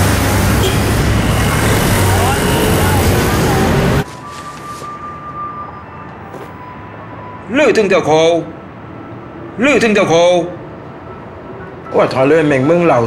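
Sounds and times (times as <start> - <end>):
street traffic: 0.0 - 13.0
voices calling out: 0.6 - 4.1.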